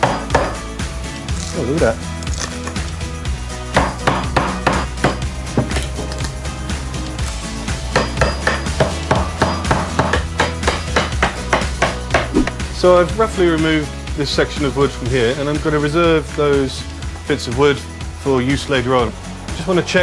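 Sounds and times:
hammer striking chisel into wood: 0:00.0 - 0:00.6, 0:03.8 - 0:05.8, 0:08.0 - 0:12.5
background music: 0:00.0 - 0:20.0.

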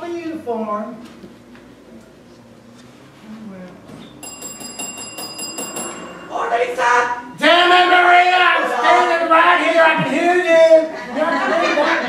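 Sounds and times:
small bell rung rapidly: 0:04.2 - 0:06.4.

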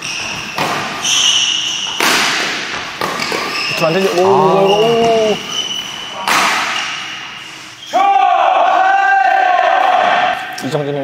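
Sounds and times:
person shouting high-pitched: 0:04.2 - 0:05.4.

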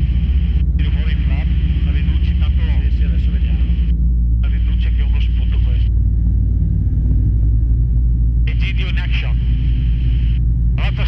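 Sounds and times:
light aircraft engine droning: 0:00.0 - 0:11.0
voice over headset intercom: 0:00.8 - 0:05.9, 0:08.5 - 0:11.0.

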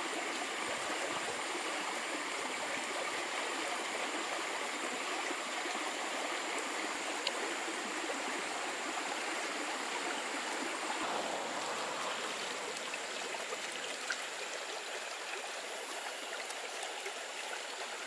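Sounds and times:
stream flowing water: 0:00.0 - 0:18.0.

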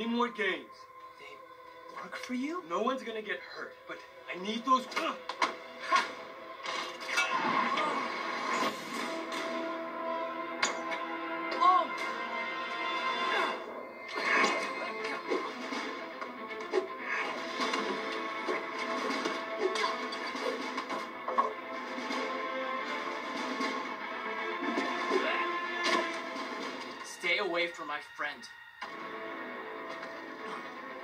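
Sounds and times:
film soundtrack music: 0:00.0 - 0:31.0
sharp hits: 0:13.5 - 0:27.1.

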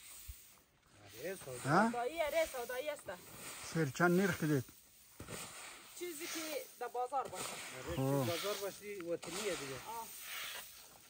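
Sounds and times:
broom sweeping grain: 0:00.0 - 0:11.0
grain sliding on shovel: 0:00.0 - 0:11.0.

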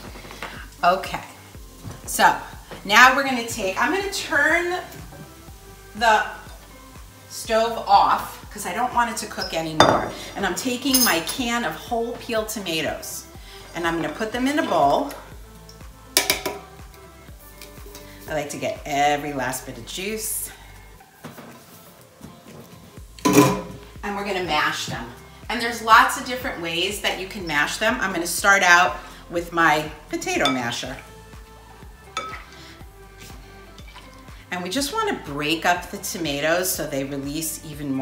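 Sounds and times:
soft background music: 0:00.0 - 0:38.0.

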